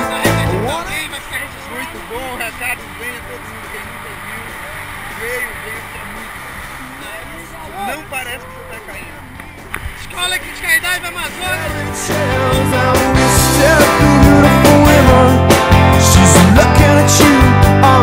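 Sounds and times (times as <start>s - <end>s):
quiet background music: 0.0s - 15.3s
people talking: 0.0s - 15.4s.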